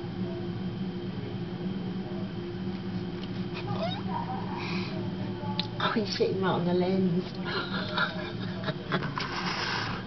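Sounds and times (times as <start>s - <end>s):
steady low hum: 0.0s - 10.0s
wavering sliding vocal cry: 3.6s - 4.3s.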